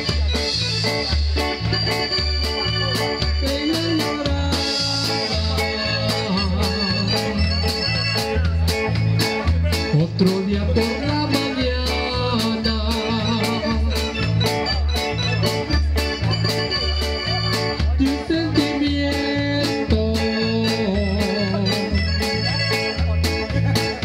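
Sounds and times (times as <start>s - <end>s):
bass line: 0.0s - 24.0s
drum kit beat: 0.0s - 24.0s
guitar: 0.0s - 24.0s
keyboard chords: 0.0s - 24.0s.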